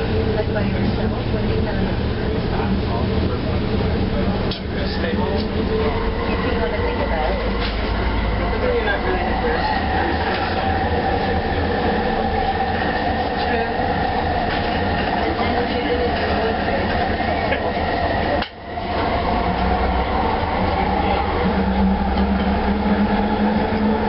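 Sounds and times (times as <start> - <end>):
wheel rumble: 0.0 - 24.0
light track clicks: 4.4 - 4.7, 17.7 - 19.8
train motor whine: 5.4 - 24.0.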